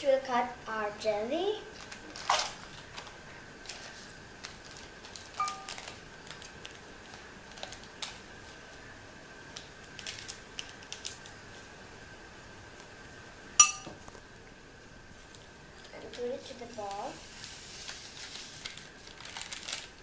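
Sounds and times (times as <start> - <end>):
plastic packet crinkling: 1.7 - 8.2, 9.9 - 11.3, 17.8 - 20.0
ringing clink: 13.6 - 13.9.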